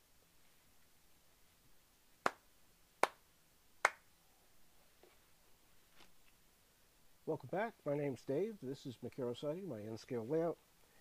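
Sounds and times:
sharp hand claps: 2.2s - 2.4s, 3.0s - 3.2s, 3.8s - 4.1s.

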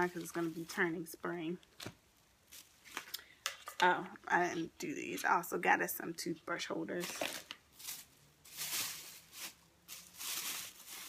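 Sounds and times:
shopping bags rustling: 0.0s - 1.2s, 6.9s - 11.0s.

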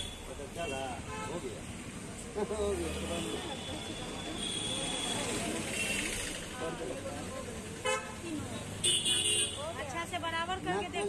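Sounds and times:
traffic noise: 0.0s - 11.0s
vehicle horn toot: 8.8s - 9.6s.

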